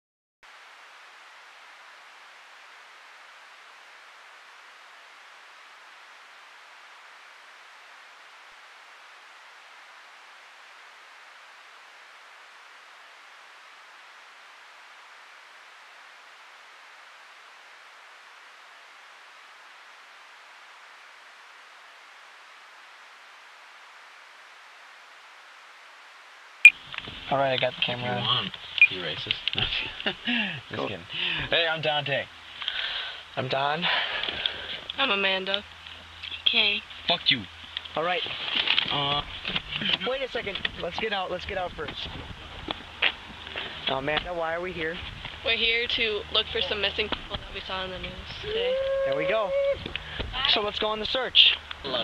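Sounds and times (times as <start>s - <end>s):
tape hiss: 0.4s - 52.0s.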